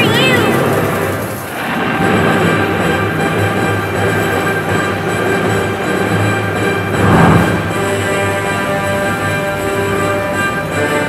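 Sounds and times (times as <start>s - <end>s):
arcade machine rattling and rumbling: 0.0s - 10.1s.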